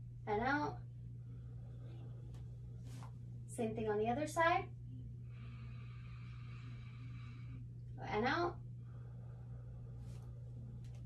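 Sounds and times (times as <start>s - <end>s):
man breathing in deeply: 5.2s - 7.7s.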